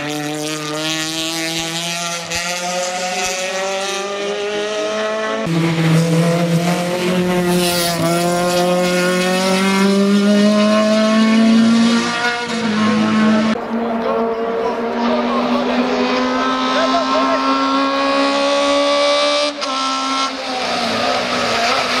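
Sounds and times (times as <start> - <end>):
racing engine accelerating hard: 0.0 - 22.0.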